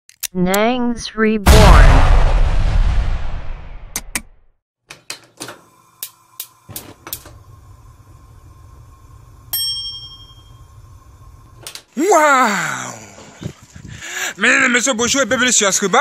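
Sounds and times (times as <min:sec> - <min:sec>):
low hum: 0:00.4 - 0:04.5, 0:07.2 - 0:11.6
ringing ding: 0:09.5 - 0:10.7.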